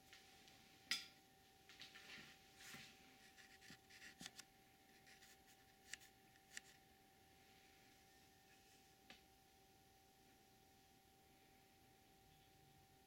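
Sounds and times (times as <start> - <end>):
faint scratching and rubbing: 2.6 - 6.0.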